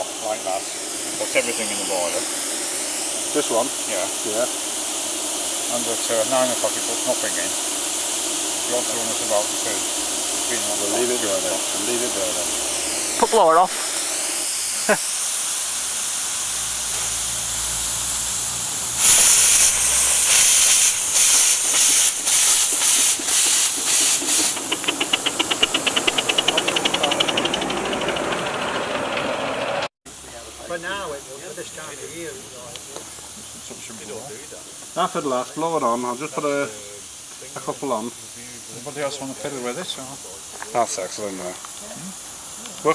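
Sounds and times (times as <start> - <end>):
steam locomotive chuffing: 0.0 - 29.9
steam hissing: 0.0 - 42.9.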